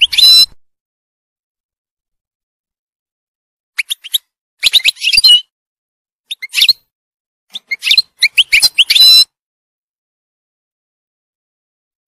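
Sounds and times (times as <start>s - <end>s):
finch twittering song: 0.0s - 0.6s, 3.8s - 5.5s, 6.3s - 6.8s, 7.5s - 9.3s.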